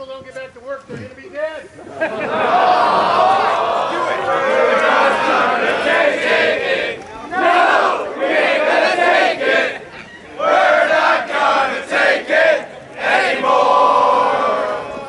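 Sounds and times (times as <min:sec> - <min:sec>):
crowd shouting and yelling: 0:01.8 - 0:15.0.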